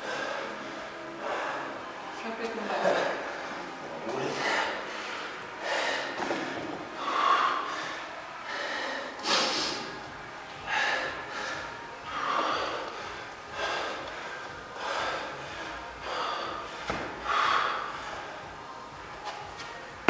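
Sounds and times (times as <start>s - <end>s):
man breathing heavily: 0.0s - 2.1s, 3.0s - 20.0s.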